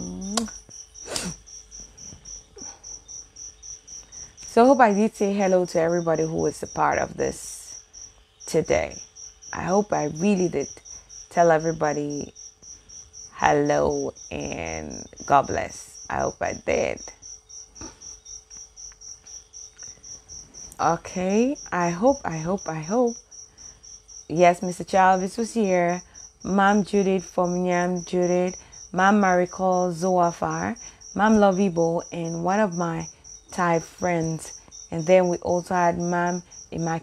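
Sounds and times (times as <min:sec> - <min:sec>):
cricket chirping: 0:00.0 - 0:37.0
faint steady hum: 0:00.0 - 0:37.0.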